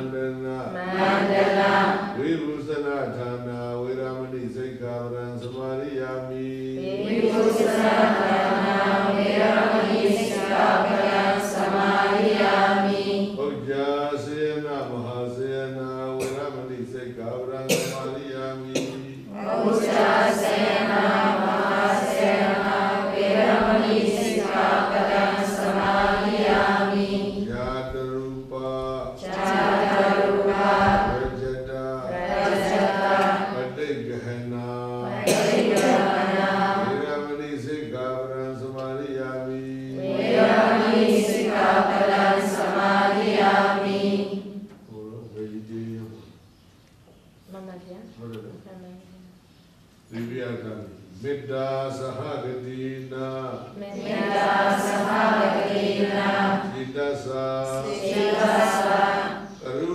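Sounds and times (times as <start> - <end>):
group chanting in unison: 0.0 - 14.2, 14.8 - 16.8, 17.4 - 44.8, 51.2 - 59.9.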